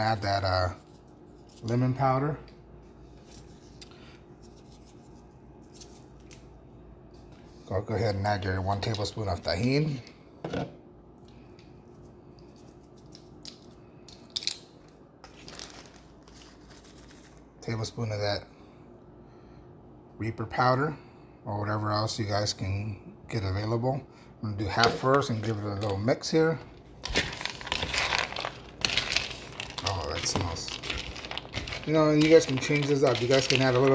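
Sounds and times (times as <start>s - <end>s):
low steady hum: 0.0s - 33.9s
plastic bag rustling and clicking: 27.0s - 33.9s
peanuts clattering in a bowl: 27.6s - 33.9s.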